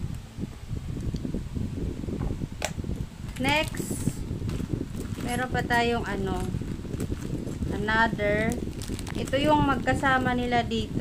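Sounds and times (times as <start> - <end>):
plastic case and packing rustling: 3.3 - 10.4.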